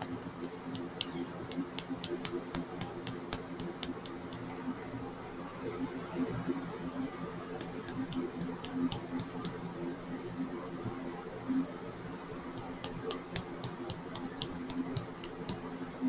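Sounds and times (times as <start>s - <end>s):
fingertip taps on plastic funnel: 0.7s - 4.4s, 7.6s - 9.6s, 12.3s - 15.6s.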